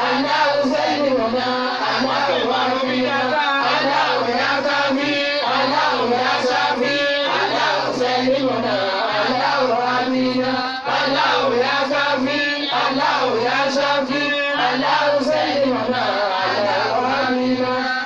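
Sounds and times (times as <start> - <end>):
man chanting into a microphone: 11.5 - 18.0.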